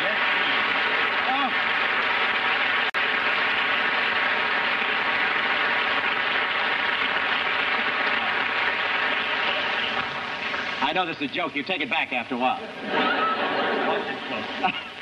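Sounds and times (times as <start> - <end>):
audience applauding: 0.0 - 11.2.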